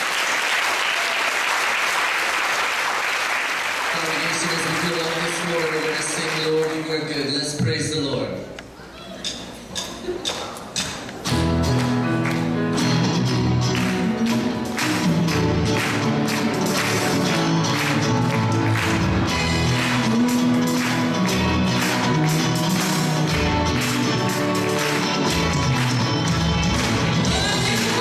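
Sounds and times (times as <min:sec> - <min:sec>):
percussion beat: 0:09.2 - 0:28.0
bass: 0:10.8 - 0:28.0
guitars: 0:10.8 - 0:28.0
piano: 0:11.3 - 0:28.0.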